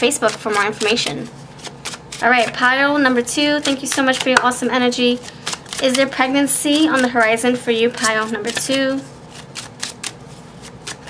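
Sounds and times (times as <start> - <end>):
cards being shuffled: 0.1 - 2.7, 3.6 - 11.0.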